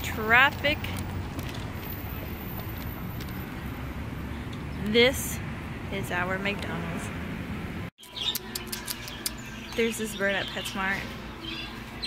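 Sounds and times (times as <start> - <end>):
low traffic hum: 0.0 - 12.0.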